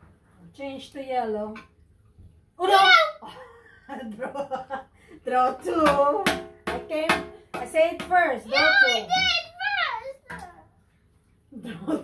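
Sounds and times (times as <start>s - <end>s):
girl's excited voice: 2.6s - 3.2s, 8.5s - 10.6s.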